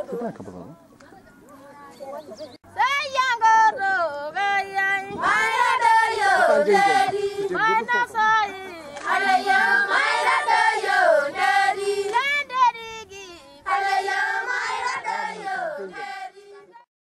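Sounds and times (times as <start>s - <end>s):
women singing together: 2.8s - 16.8s.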